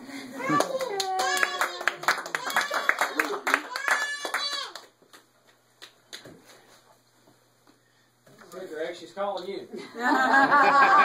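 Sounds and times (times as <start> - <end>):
group clapping: 0.5 - 6.3
long drawn-out cry: 1.2 - 4.8
people laughing: 9.8 - 11.0.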